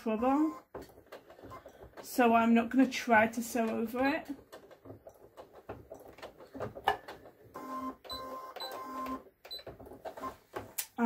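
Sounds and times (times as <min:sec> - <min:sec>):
sewing machine motor whirring: 0:00.0 - 0:02.3, 0:03.6 - 0:10.5.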